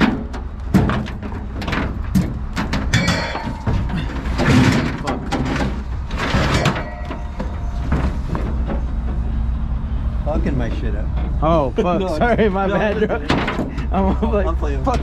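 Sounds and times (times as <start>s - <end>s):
tire knocking and clunking: 0.0s - 11.6s, 12.3s - 15.0s
steady low hum: 0.0s - 15.0s
tire scraping against truck bed: 0.0s - 15.0s.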